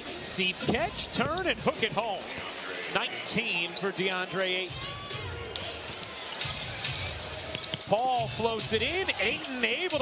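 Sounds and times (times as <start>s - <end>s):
crowd murmur: 0.0s - 7.8s.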